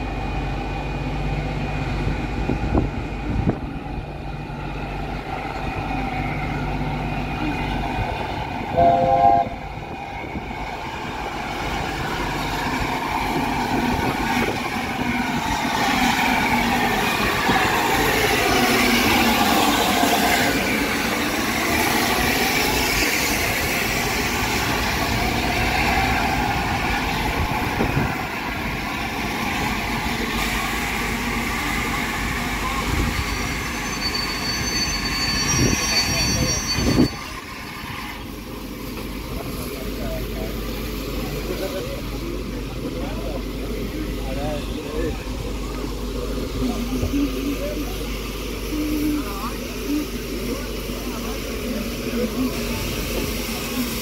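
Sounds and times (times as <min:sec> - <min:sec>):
rush of steam: 0:00.0 - 0:54.0
steam locomotive whistle: 0:08.7 - 0:09.6.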